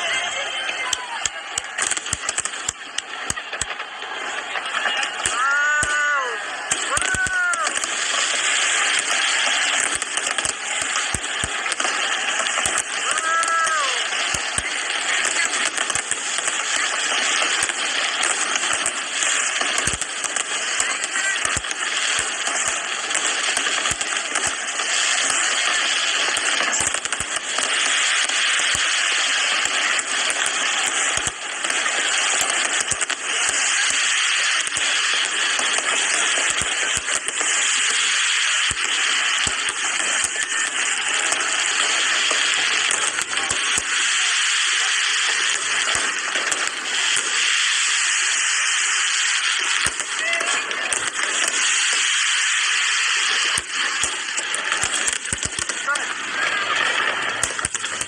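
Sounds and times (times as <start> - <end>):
firework bangs: 0.0 - 58.0
fireworks crackling and hissing: 0.0 - 58.0.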